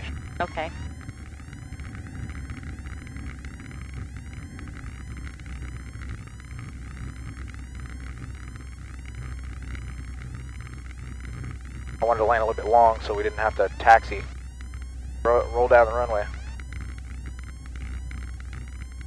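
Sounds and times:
aircraft engine drone in cabin: 0:00.0 - 0:19.0.

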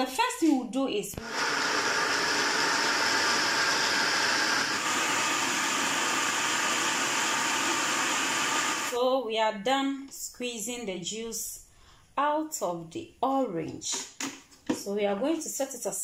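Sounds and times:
citrus juicer motor whirring: 0:01.2 - 0:09.0.

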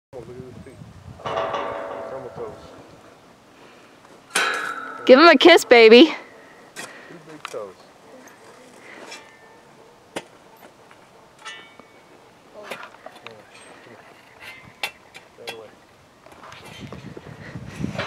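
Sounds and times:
faint voices murmuring: 0:06.0 - 0:11.4.

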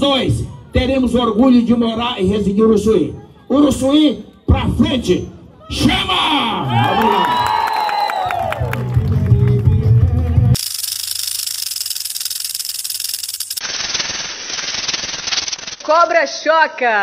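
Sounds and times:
rattlesnake rattling: 0:10.6 - 0:16.0.

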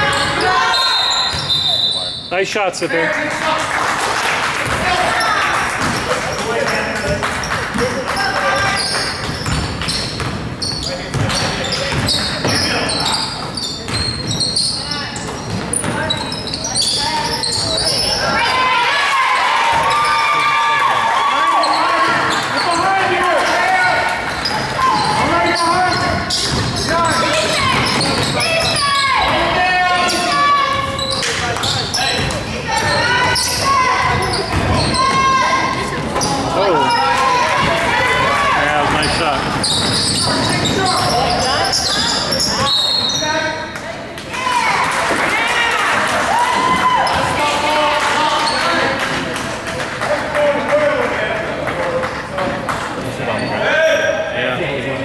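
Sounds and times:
people shouting and chattering: 0:00.0 - 0:55.0.

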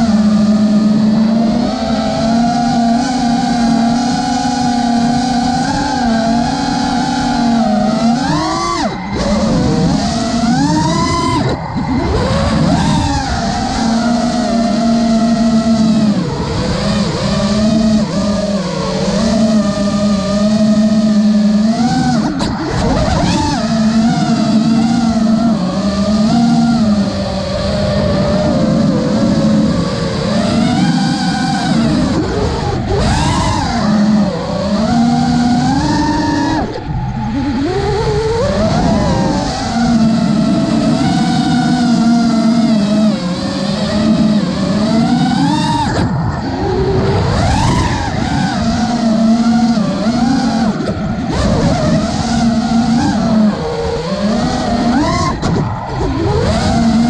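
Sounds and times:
drone motors whining: 0:00.0 - 0:57.0.

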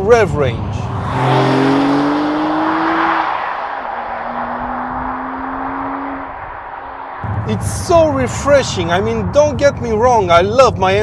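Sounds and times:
car engine accelerating away: 0:00.7 - 0:07.6.

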